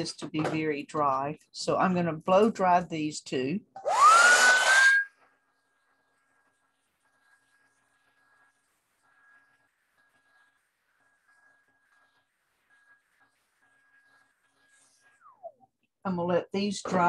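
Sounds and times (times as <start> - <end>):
hair dryer whine: 3.8 - 5.1.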